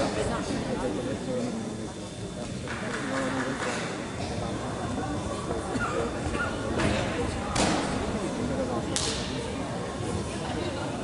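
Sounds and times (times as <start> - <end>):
murmur of voices: 0.0 - 11.0
sharp slap: 7.5 - 8.0, 9.0 - 9.3.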